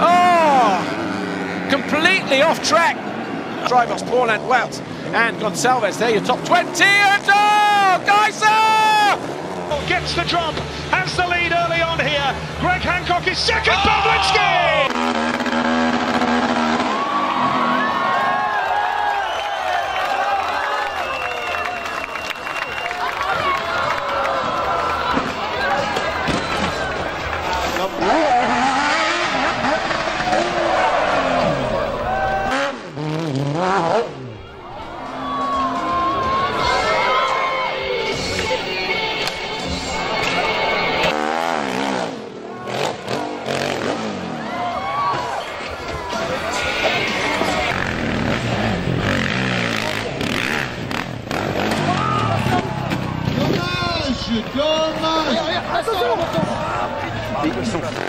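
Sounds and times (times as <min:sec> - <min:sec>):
spectators shouting: 0:00.0 - 0:04.6, 0:06.5 - 0:10.0, 0:12.6 - 0:32.9, 0:34.0 - 0:58.0
motorcycle engines revving: 0:00.0 - 0:58.0.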